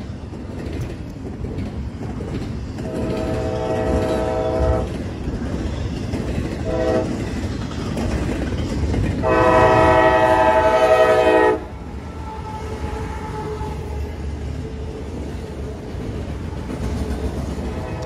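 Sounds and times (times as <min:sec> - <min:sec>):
train rumble: 0:00.0 - 0:18.0
locomotive air horn blasts: 0:02.8 - 0:04.9, 0:06.6 - 0:07.2, 0:09.2 - 0:11.7.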